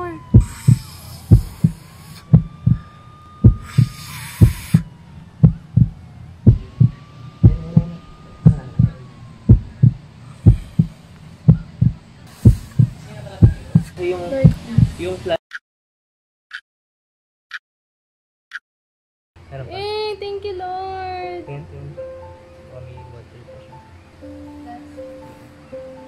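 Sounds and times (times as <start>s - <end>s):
heartbeat thumps: 0.0s - 2.8s, 3.4s - 15.1s
soft drawn-out tone: 0.0s - 12.1s, 20.4s - 26.0s.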